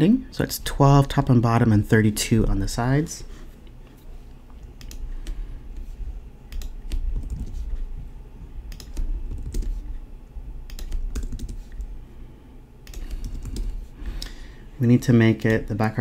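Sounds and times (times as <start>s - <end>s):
computer keyboard typing: 6.5s - 7.7s, 8.7s - 9.9s, 10.6s - 11.9s, 12.8s - 13.8s.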